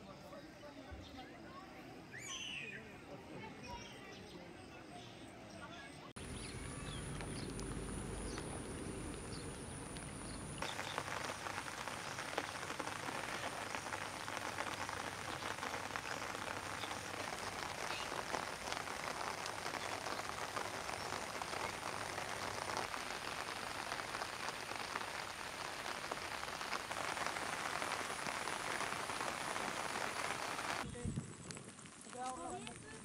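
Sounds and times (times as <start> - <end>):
steady rain falling: 6.2 - 33.0.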